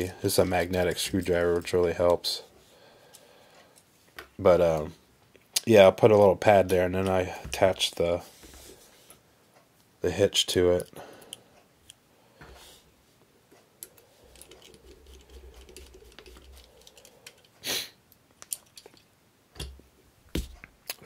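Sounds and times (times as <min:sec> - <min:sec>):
small clicks and taps of handling: 0:13.5 - 0:17.5.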